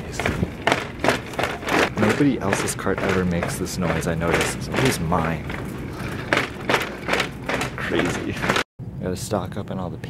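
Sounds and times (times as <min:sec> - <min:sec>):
shopping cart rolling: 0:00.0 - 0:08.6.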